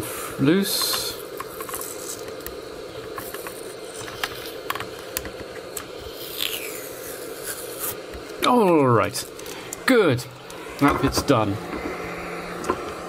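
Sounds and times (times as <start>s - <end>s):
heat gun blowing air: 9.3s - 13.0s.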